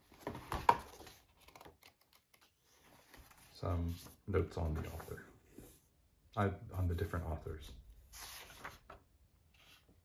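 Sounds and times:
book pages being handled: 0.0s - 5.8s, 8.0s - 10.0s.

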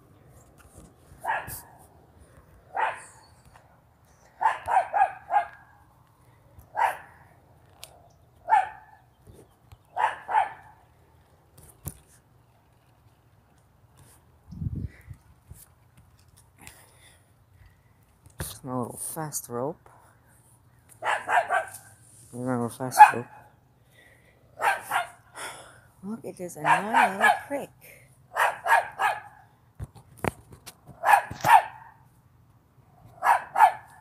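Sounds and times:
small dog barking: 1.2s - 1.7s, 2.7s - 3.2s, 4.4s - 5.7s, 6.7s - 7.1s, 8.4s - 9.0s, 9.9s - 10.8s, 21.0s - 21.9s, 23.0s - 23.4s, 24.6s - 25.2s, 26.6s - 27.5s, 28.3s - 29.4s, 31.0s - 32.0s, 33.2s - 34.0s.

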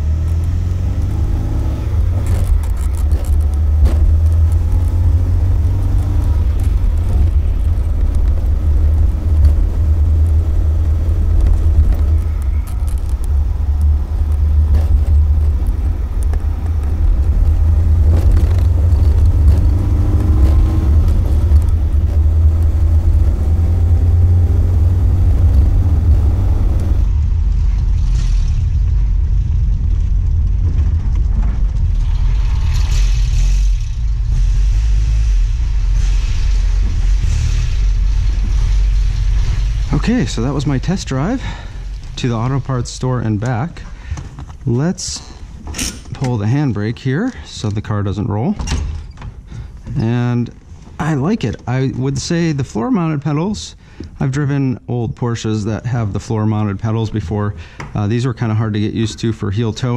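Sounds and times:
car engine driving on road: 0.0s - 59.9s.

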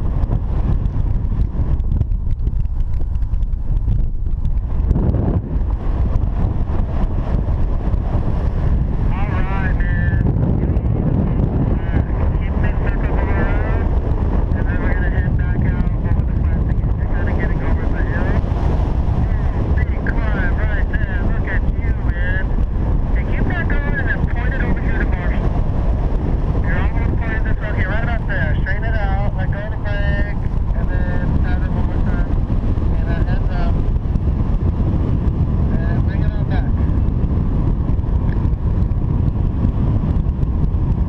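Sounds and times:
wind rushing over microphone: 0.0s - 41.0s.

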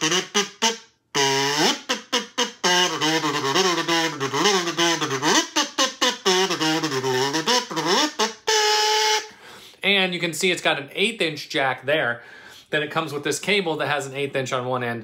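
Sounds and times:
kazoo buzzy hummed tune: 0.0s - 9.4s.

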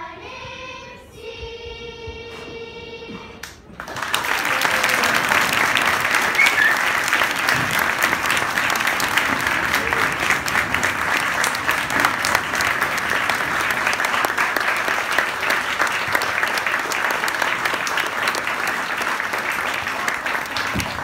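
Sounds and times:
audience applauding: 3.8s - 21.0s.

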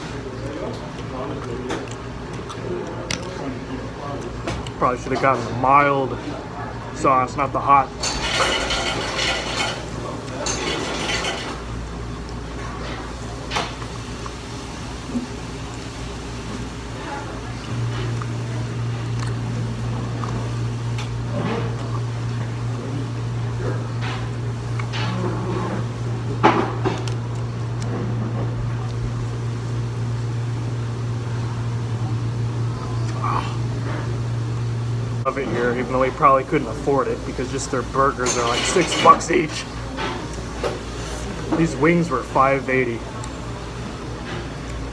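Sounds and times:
steady low hum: 0.0s - 44.9s
person chewing: 19.0s - 20.6s.

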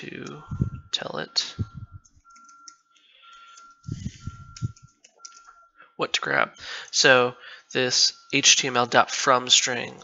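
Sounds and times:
faint high whine: 0.0s - 10.0s
computer keyboard typing: 2.0s - 5.6s.

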